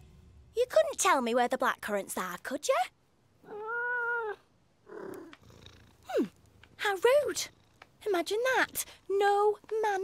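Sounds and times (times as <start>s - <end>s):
cat purring: 3.4s - 10.0s.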